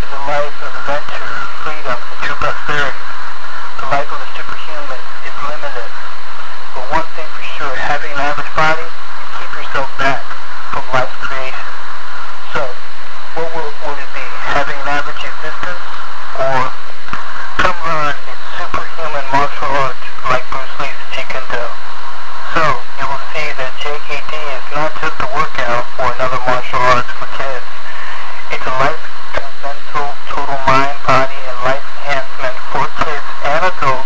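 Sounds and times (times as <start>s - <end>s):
lo-fi radio talking: 0.0s - 34.0s.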